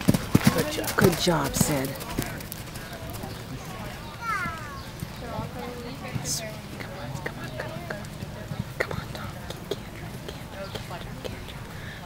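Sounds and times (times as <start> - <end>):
horse hoofbeats on sand: 0.0 - 4.1
faint voices: 0.4 - 12.0.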